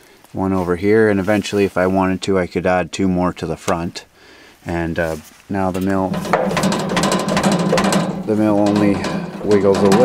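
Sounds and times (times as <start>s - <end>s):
metal rattling clicks and knocks: 5.8s - 10.0s.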